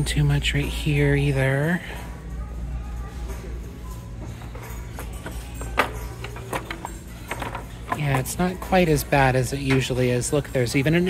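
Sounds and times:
store background music: 0:00.0 - 0:11.0
items handled on a shelf: 0:03.3 - 0:11.0.

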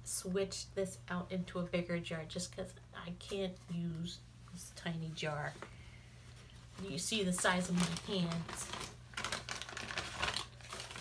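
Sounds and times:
plastic packaging clicking and rustling: 0:07.3 - 0:11.0.

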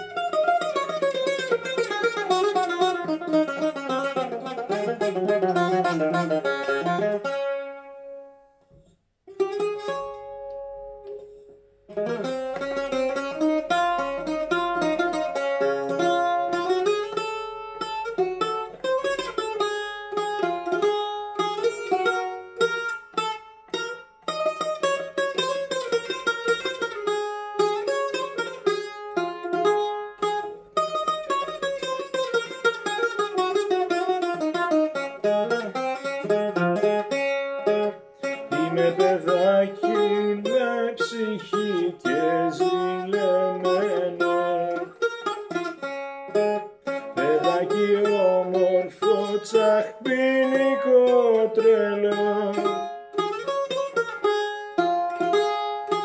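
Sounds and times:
plucked bouzouki melody: 0:00.0 - 0:56.0.

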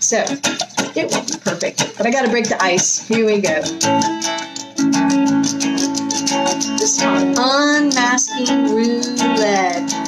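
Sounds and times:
electric guitar strumming chords: 0:00.0 - 0:10.0.

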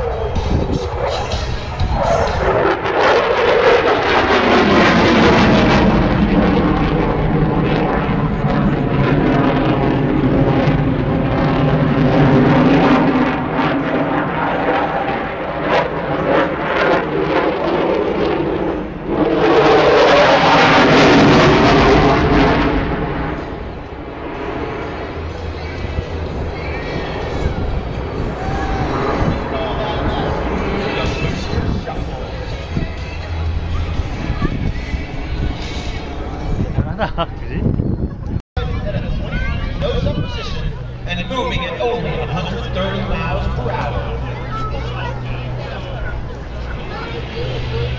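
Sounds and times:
fighter jet flying past: 0:00.0 - 0:47.9.

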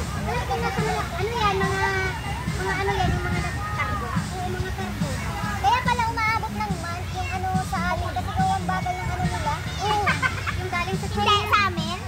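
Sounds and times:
high-pitched voices calling: 0:00.0 - 0:12.0.

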